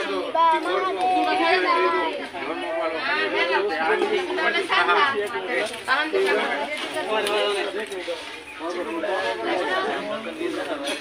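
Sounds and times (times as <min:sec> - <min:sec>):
high-pitched voices chattering: 0:00.0 - 0:11.0.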